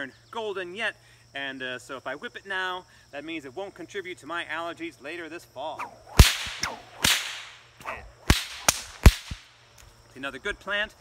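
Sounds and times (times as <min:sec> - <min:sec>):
bullwhip cracking: 0:05.8 - 0:09.5.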